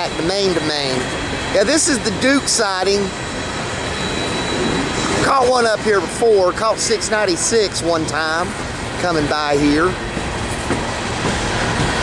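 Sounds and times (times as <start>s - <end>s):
diesel locomotives running: 0.0s - 12.0s.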